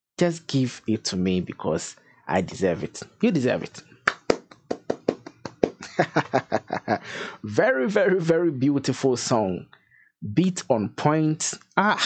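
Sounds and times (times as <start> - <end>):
person clapping hands quickly: 4.1 - 5.9.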